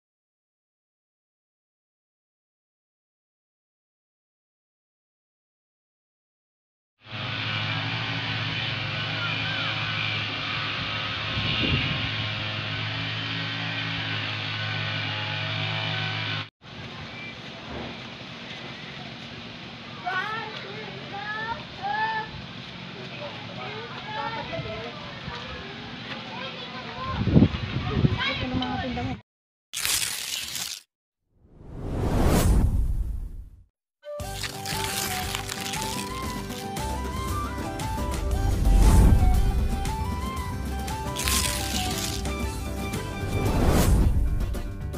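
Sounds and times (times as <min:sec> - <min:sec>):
outdoor background: 0:07.0 - 0:29.2
bright melodic background music: 0:34.2 - 0:43.6.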